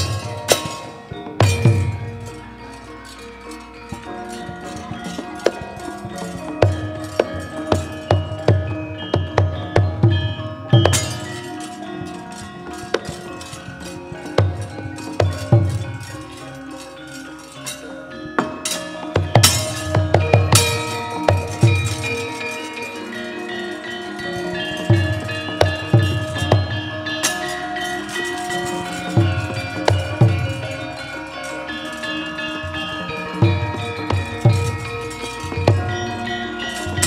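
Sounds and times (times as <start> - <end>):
gamelan metallophones and gongs: 0.0 - 37.0.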